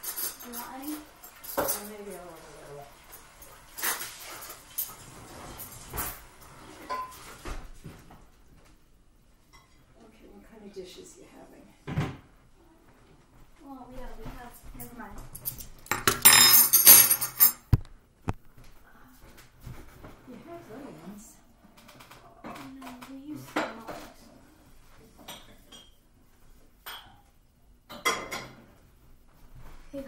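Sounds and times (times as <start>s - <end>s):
metal spoons clattering on table: 0.0s - 2.1s, 15.4s - 17.7s.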